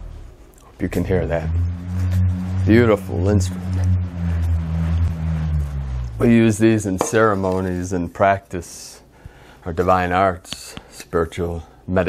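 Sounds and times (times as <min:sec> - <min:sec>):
bullroarer roaring drone: 0:00.0 - 0:07.5.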